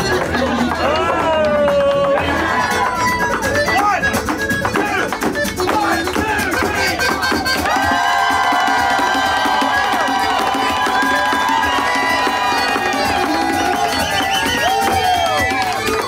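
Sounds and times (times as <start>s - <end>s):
crowd cheering: 0.0s - 3.6s, 5.8s - 16.0s
dance shoes beating on board: 0.0s - 16.0s.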